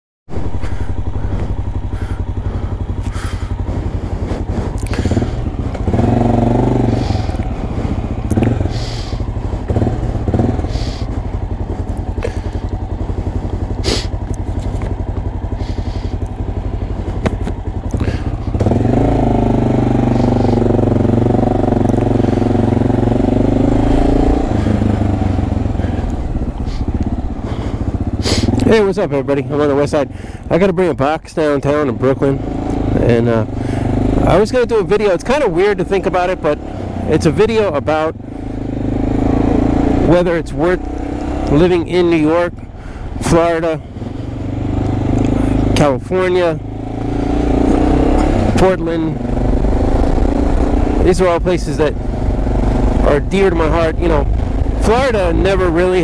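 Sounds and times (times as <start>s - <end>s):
motorcycle engine running: 0.3s - 56.0s.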